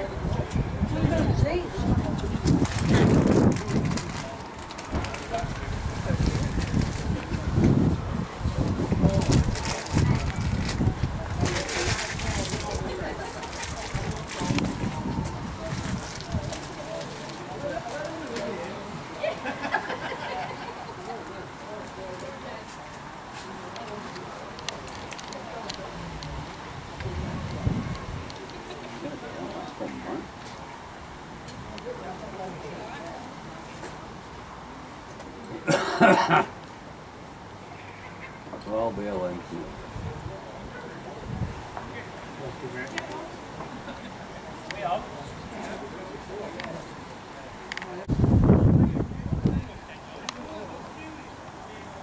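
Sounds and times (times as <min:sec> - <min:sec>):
wind over microphone: 0:00.0 - 0:17.0, 0:25.9 - 0:28.7, 0:41.2 - 0:41.8, 0:48.1 - 0:49.8
faint distant voices: 0:00.0 - 0:52.0.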